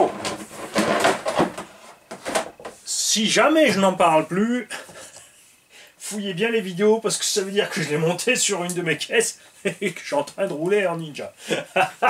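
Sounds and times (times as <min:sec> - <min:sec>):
plastic shell scraping and knocking: 0:00.0 - 0:02.8.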